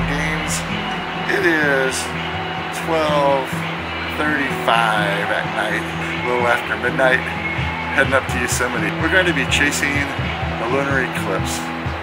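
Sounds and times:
steady low hum: 0.0s - 1.6s
man speaking: 0.0s - 2.1s, 4.2s - 7.4s, 8.0s - 11.6s
acoustic guitar music: 0.0s - 12.0s.

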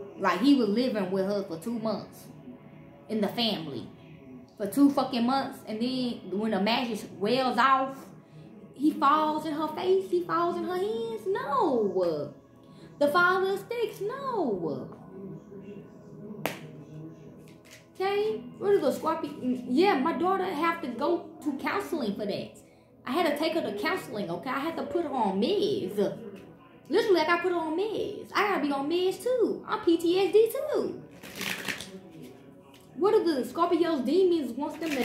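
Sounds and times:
faint background music: 0.0s - 35.0s
finger snap: 16.4s - 16.8s
cards handling: 17.5s - 17.8s, 31.1s - 32.8s
cards being shuffled: 17.6s - 17.8s, 31.1s - 32.8s, 34.8s - 35.0s.

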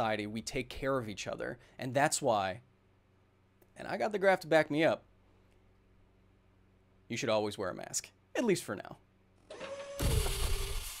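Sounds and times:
steady hum with hiss: 0.0s - 11.0s.

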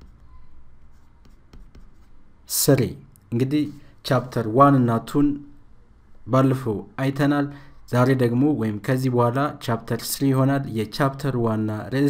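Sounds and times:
pen scratching on paper: 0.0s - 2.2s.

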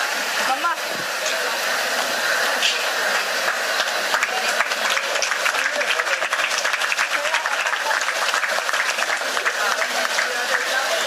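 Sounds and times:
audience applause: 1.6s - 11.0s.

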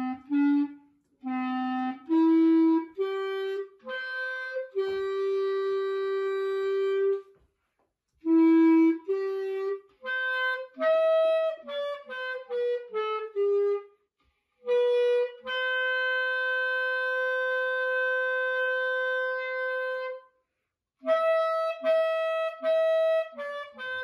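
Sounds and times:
solo clarinet slow melody: 0.0s - 7.4s, 8.2s - 13.9s, 14.6s - 20.4s, 21.0s - 24.0s.

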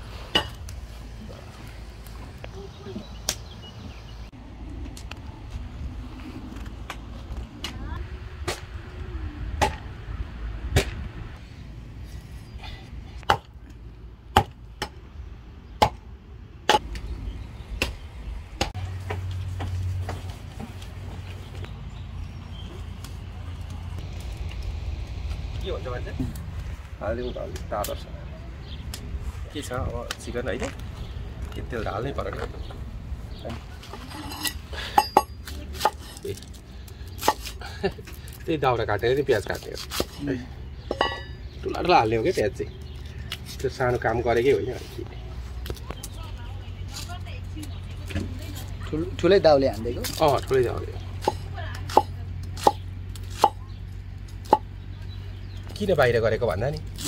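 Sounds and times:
steady low rumble: 0.0s - 35.4s
cleaver chopping into wood: 15.8s - 16.0s, 51.2s - 53.6s
dry wood cracking: 22.4s - 28.0s, 35.4s - 40.3s, 49.7s - 55.9s, 56.7s - 57.0s.

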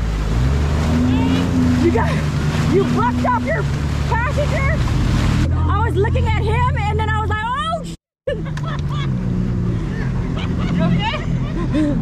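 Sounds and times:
jet ski engine idling: 8.4s - 12.0s.

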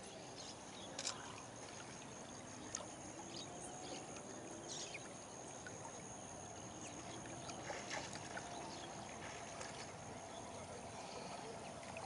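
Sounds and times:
river water rippling and lapping: 0.0s - 12.0s
small water splashes: 0.8s - 12.0s.

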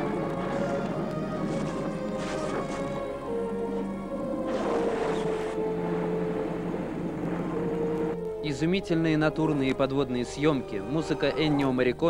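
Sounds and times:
low held score tones: 0.0s - 12.0s.

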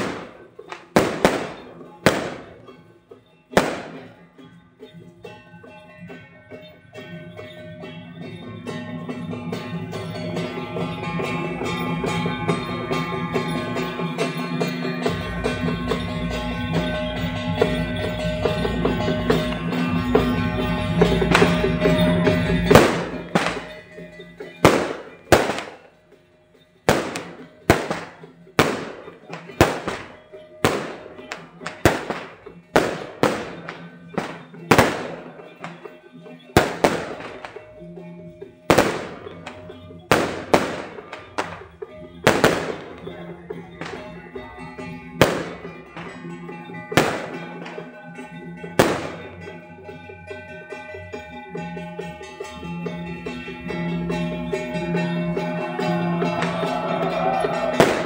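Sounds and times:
firecrackers banging: 0.0s - 4.5s, 9.4s - 26.2s, 26.8s - 50.0s, 54.1s - 58.0s
steady music: 5.3s - 58.0s.

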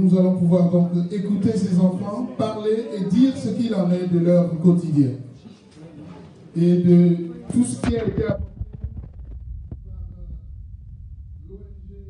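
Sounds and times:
handheld microphone handling noise: 7.4s - 11.0s.

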